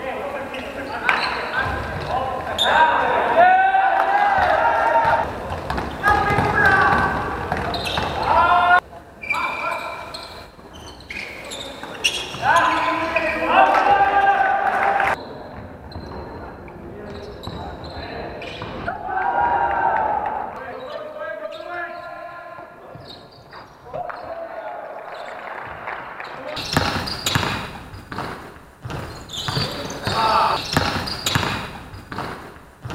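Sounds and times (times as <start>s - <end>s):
basketball bouncing on court: 1.1s - 2.7s, 4.2s - 8.5s, 26.6s - 32.9s
players shouting: 1.2s - 10.1s, 11.6s - 15.2s, 18.8s - 22.4s, 29.6s - 31.6s.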